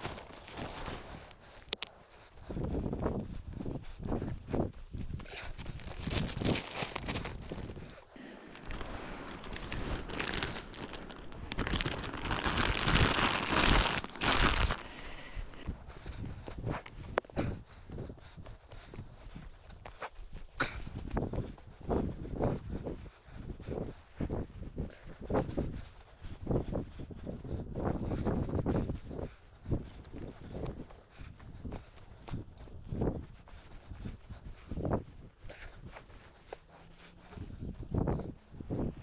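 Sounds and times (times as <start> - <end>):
footsteps on dry grass and rock: 0.0 - 39.0.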